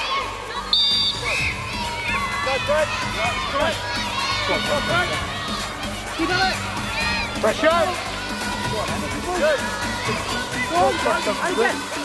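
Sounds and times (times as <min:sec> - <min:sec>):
children shouting and cheering: 0:00.0 - 0:12.0
referee's whistle blast: 0:00.7 - 0:01.6.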